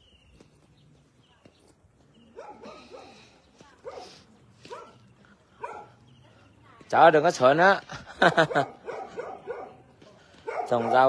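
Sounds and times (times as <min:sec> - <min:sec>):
dog barking: 0:02.3 - 0:06.1, 0:08.3 - 0:11.0.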